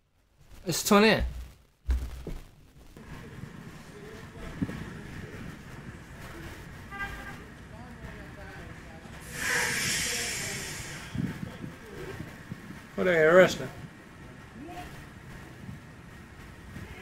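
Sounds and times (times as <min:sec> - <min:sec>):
faint voices: 0:03.0 - 0:15.7
loud rushing hiss: 0:09.2 - 0:11.6.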